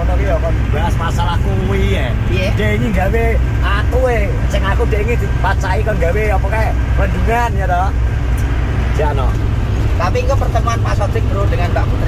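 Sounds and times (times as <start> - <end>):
people talking in a car: 0.0 - 12.0
road and engine rumble: 0.0 - 12.0.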